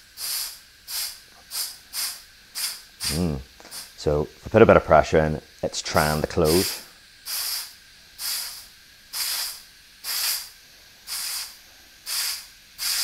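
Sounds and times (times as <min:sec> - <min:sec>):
short hisses of air: 0:00.0 - 0:04.0, 0:06.4 - 0:13.0.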